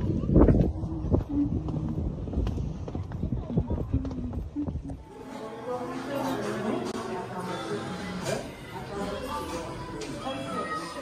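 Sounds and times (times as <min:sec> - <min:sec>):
low rumble: 0:00.0 - 0:05.0.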